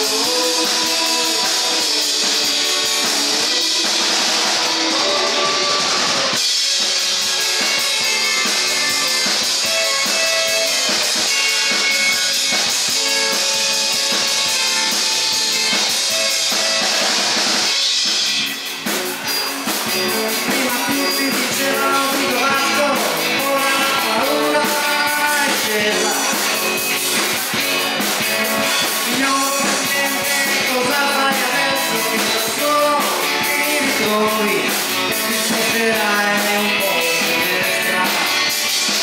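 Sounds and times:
drum beats: 0:00.0 - 0:39.0
live rock band playing: 0:00.0 - 0:39.0.

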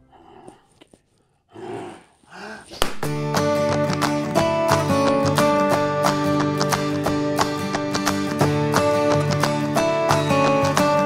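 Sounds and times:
growl-like vocal sounds: 0:01.5 - 0:02.7
strummed acoustic guitar music: 0:03.0 - 0:11.0.

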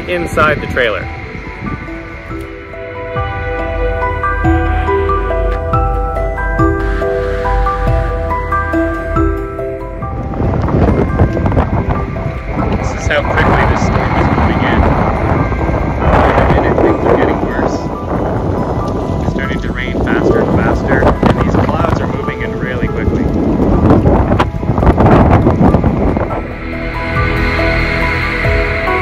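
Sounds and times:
background music: 0:00.0 - 0:29.0
gusty wind buffeting microphone: 0:00.0 - 0:29.0.

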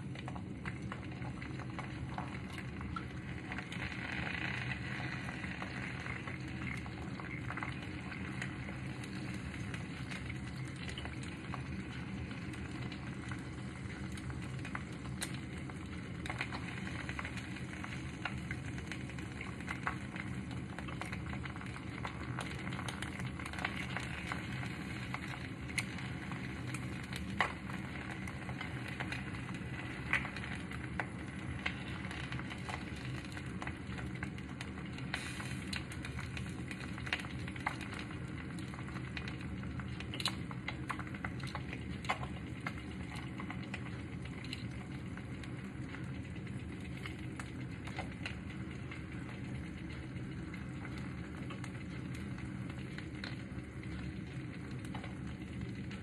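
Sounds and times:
egg sizzling in a frying pan: 0:00.0 - 0:56.0.

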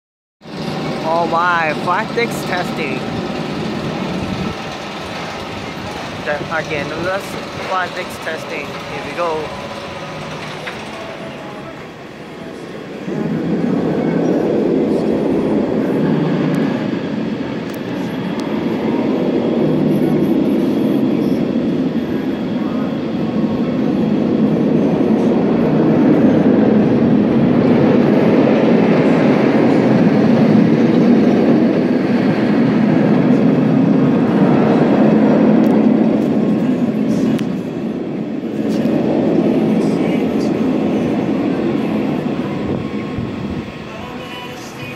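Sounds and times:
roller coaster wheels roaring on track: 0:00.4 - 0:44.9.

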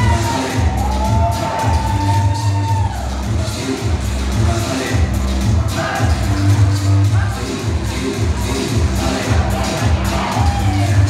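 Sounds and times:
crowd cheering: 0:00.0 - 0:03.6, 0:09.7 - 0:11.0
latin dance music: 0:00.0 - 0:11.0.

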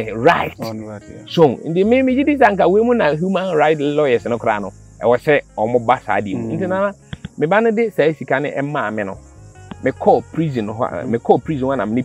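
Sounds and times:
insects chirring: 0:00.0 - 0:12.0
man speaking: 0:02.6 - 0:07.6.

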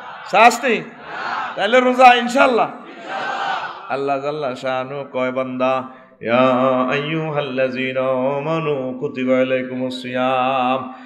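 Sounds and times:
man chanting melodically: 0:00.3 - 0:01.0, 0:01.6 - 0:02.8, 0:03.9 - 0:10.9.

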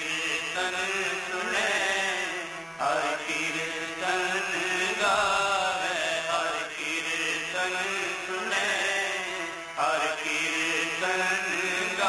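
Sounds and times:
harmonium drone: 0:00.0 - 0:12.0
men singing a devotional hymn: 0:00.0 - 0:12.0
tabla: 0:00.0 - 0:12.0.

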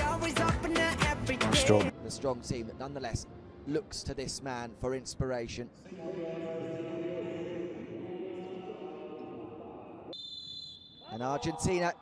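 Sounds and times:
referee's whistle blast: 0:10.1 - 0:11.5.

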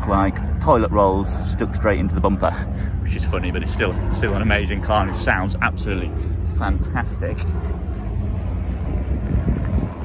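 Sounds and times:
faint outdoor background noise: 0:00.0 - 0:10.0
wind buffeting microphone: 0:00.0 - 0:10.0.

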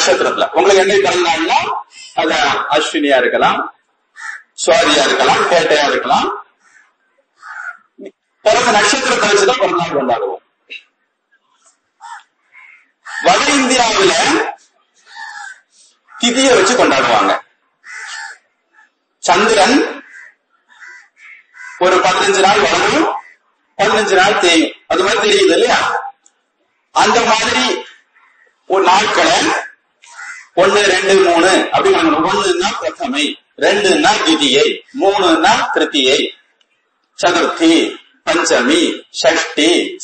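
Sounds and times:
man speaking: 0:00.0 - 0:03.8, 0:04.6 - 0:06.5, 0:08.0 - 0:10.9, 0:13.2 - 0:14.8, 0:16.2 - 0:17.5, 0:19.2 - 0:20.1, 0:21.8 - 0:26.2, 0:27.0 - 0:28.0, 0:28.6 - 0:29.8, 0:30.6 - 0:36.4, 0:37.2 - 0:40.0
crow cawing: 0:04.1 - 0:04.6, 0:06.5 - 0:08.5, 0:11.6 - 0:13.5, 0:15.0 - 0:16.4, 0:17.8 - 0:19.0, 0:19.9 - 0:21.9, 0:23.2 - 0:23.8, 0:27.8 - 0:28.7, 0:29.6 - 0:30.6.

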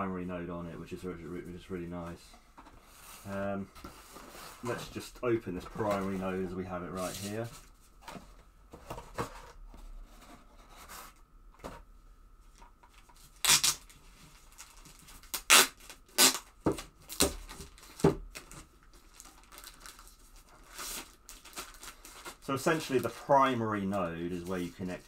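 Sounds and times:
quiet handling: 0:00.1 - 0:10.7
plastic wrapping tearing: 0:13.4 - 0:23.2.

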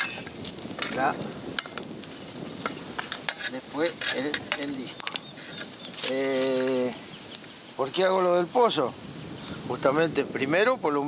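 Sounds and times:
campfire crackling and hissing: 0:00.0 - 0:11.0.

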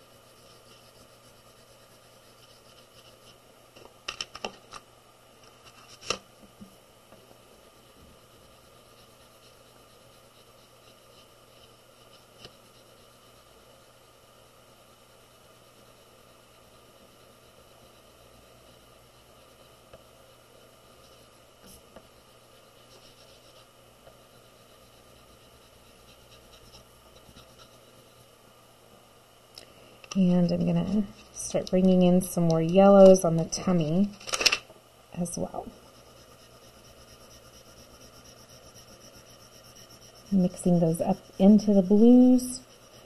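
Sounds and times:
pastel scratching on paper: 0:00.0 - 0:03.4, 0:07.8 - 0:13.9, 0:15.1 - 0:19.8, 0:20.8 - 0:28.2, 0:35.7 - 0:43.0.

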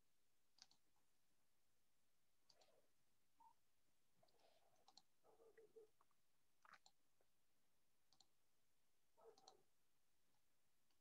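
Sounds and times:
computer mouse clicks: 0:00.5 - 0:00.8, 0:02.4 - 0:02.8, 0:04.2 - 0:05.1, 0:08.1 - 0:08.3, 0:09.2 - 0:09.6.

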